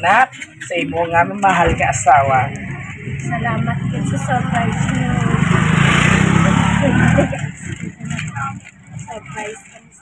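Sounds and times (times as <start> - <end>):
faint voices: 0.0 - 10.0
vehicle passing by: 1.9 - 9.5.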